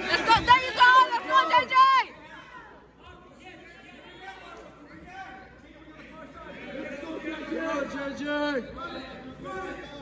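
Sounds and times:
faint chatter of spectators: 0:00.0 - 0:10.0.

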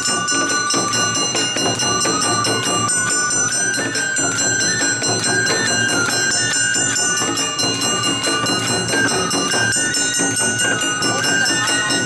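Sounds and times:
bamboo flute melody: 0:00.0 - 0:12.0.

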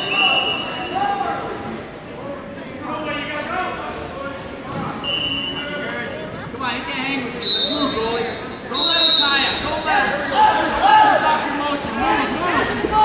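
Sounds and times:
voices echoing in sports hall: 0:00.0 - 0:13.0.

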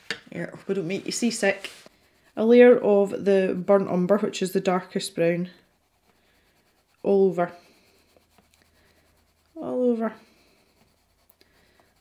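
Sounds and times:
pencil scratching on paper: 0:00.3 - 0:12.0.

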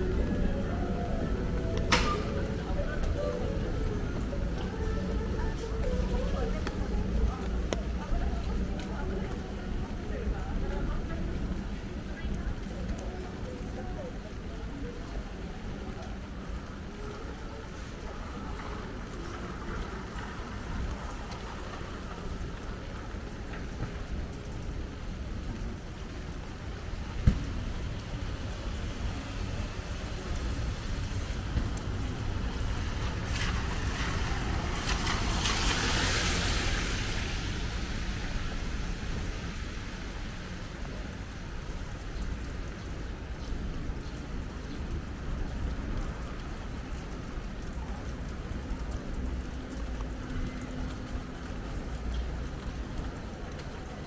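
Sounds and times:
steady low city rumble: 0:00.0 - 0:54.0
van driving past on wet road: 0:28.3 - 0:40.7
hiss of wet pavement: 0:32.9 - 0:40.6.

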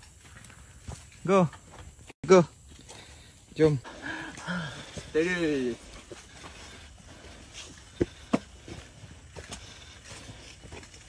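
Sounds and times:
footsteps crunching dry leaves: 0:00.0 - 0:11.0.

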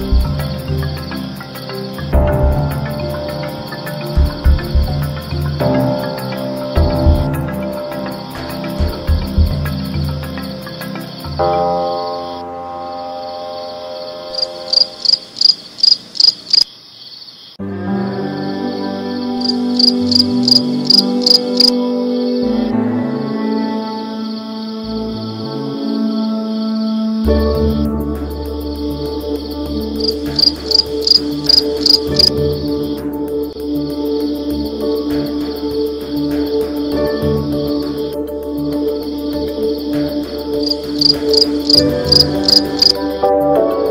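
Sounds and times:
soft sustained background music: 0:00.0 - 0:16.6, 0:17.6 - 0:43.9
crickets chirping: 0:00.0 - 0:43.9
night insects trilling: 0:00.0 - 0:43.9.

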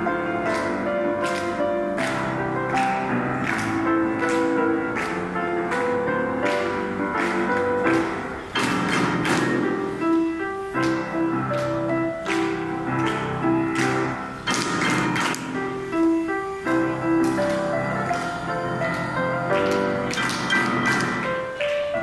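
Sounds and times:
solo grand piano: 0:00.0 - 0:22.0.

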